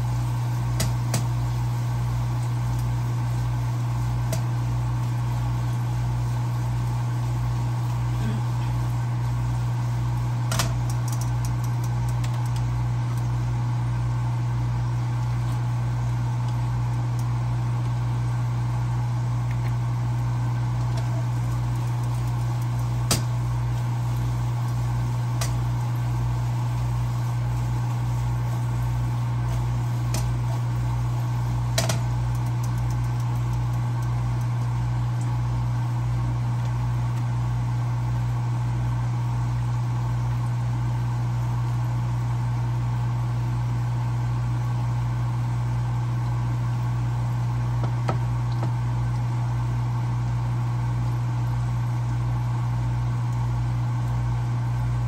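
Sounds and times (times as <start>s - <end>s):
low machine hum: 0.0s - 55.0s.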